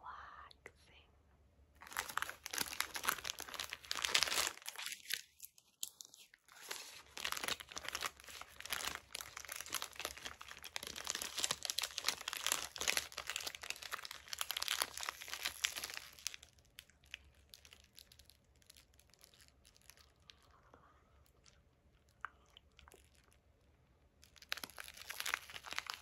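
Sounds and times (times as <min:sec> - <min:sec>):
paper wrapper crinkling: 0:01.8 - 0:20.3, 0:24.2 - 0:26.0.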